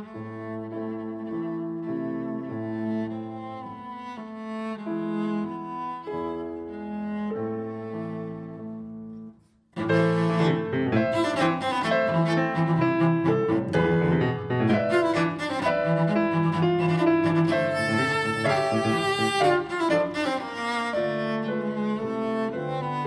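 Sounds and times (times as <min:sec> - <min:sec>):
cello: 0:00.0 - 0:23.0
piano accompaniment: 0:00.0 - 0:23.0.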